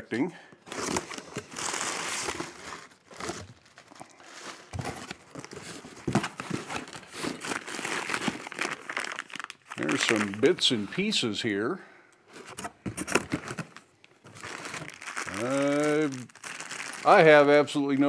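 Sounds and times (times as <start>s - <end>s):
paper packing crinkling: 0.6s - 11.1s, 12.4s - 18.0s.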